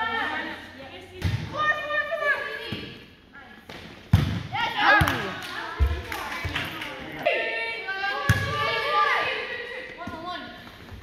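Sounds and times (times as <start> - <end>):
volleyball thumps: 3.6 - 6.7.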